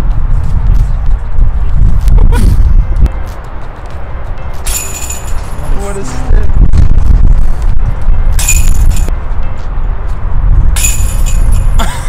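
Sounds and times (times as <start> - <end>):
wind buffeting microphone: 0.0 - 12.0
metal chains clinking: 4.6 - 5.9, 8.3 - 9.1, 10.8 - 11.8.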